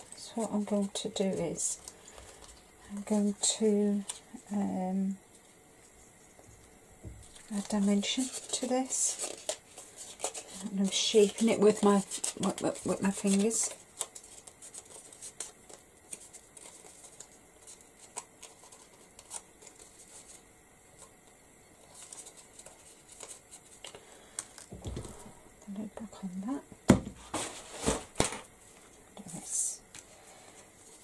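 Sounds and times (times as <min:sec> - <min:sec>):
paper crinkling and rustling: 0:07.2 - 0:25.4
knocks on a table: 0:26.9 - 0:27.2.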